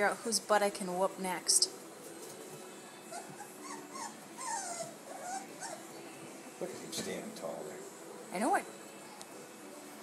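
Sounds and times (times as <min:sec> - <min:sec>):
puppies whining: 0:02.2 - 0:06.5.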